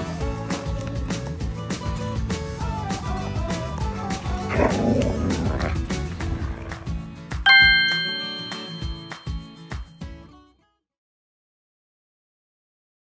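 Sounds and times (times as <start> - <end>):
background music with beat: 0.0 - 4.7, 7.3 - 10.2
bright chime: 7.5 - 9.9.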